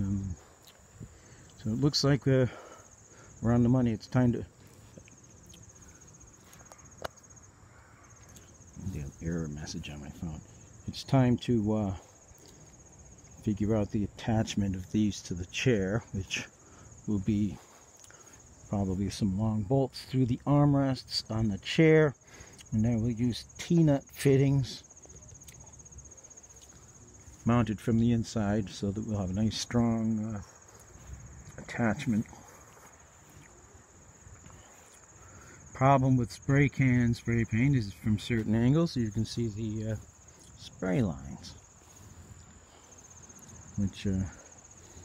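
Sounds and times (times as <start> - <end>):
cricket trilling: 0.0 - 45.0.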